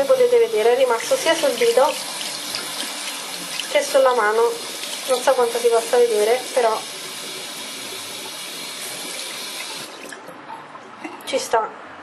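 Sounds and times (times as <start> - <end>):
tap water running into sink: 0.0 - 10.3.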